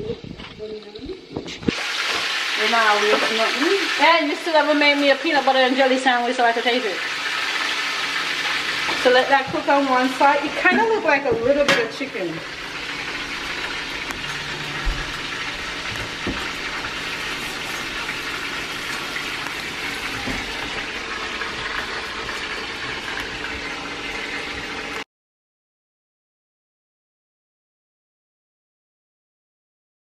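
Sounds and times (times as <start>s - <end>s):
meat sizzling in a pot: 0.0s - 25.0s.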